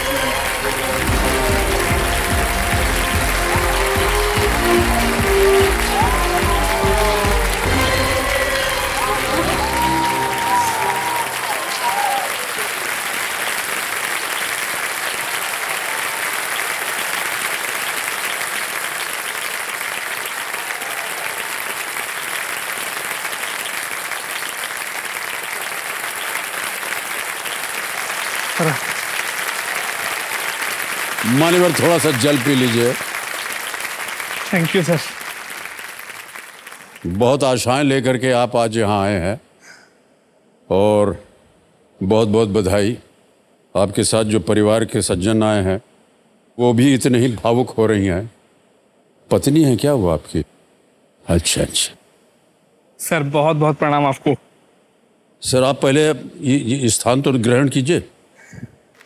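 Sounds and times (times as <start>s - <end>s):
upbeat music with strong beat: 0.0s - 9.9s
audience applauding: 0.0s - 37.4s.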